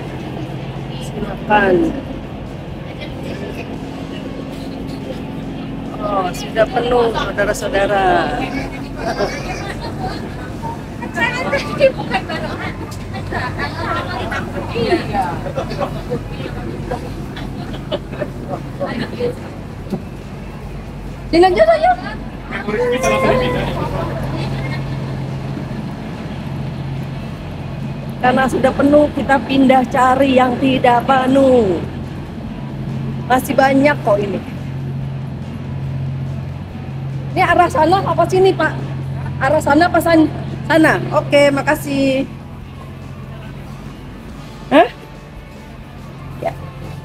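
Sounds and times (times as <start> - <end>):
faint passenger chatter: 0.0 - 47.0
train carriage hum: 0.0 - 47.0.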